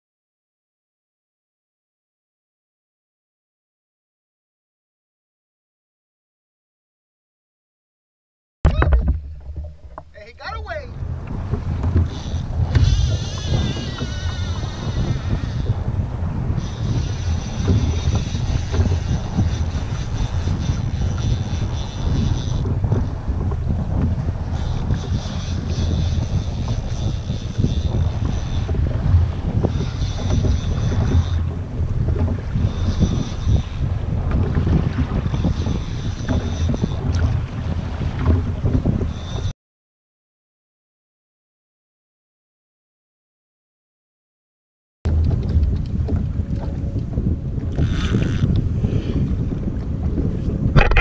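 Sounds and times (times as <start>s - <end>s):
choppy sea: 8.7s - 39.5s, 45.1s - 51.0s
strong wind buffeting microphone: 8.7s - 39.5s, 45.1s - 51.0s.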